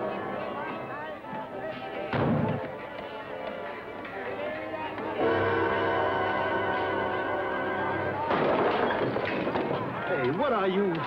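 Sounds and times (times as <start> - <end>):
dramatic orchestral chord: 5.2 - 8.3
noisy crash: 8.2 - 10.0.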